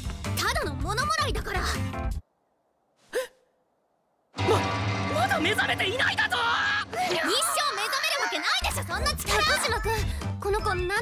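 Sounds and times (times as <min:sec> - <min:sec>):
background music: 0:04.4 - 0:11.0.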